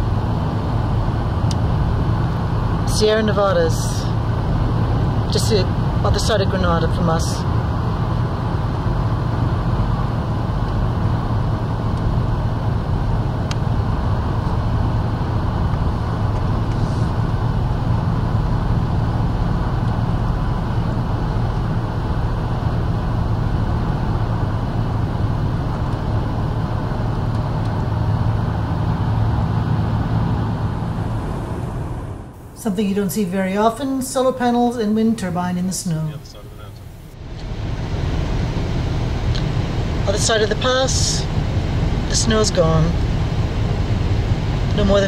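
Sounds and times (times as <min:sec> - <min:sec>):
car engine and road rumble: 0:00.0 - 0:45.0.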